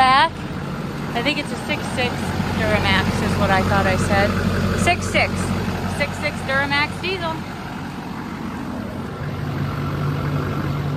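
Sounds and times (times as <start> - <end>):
diesel engine idling: 0.0 - 10.9.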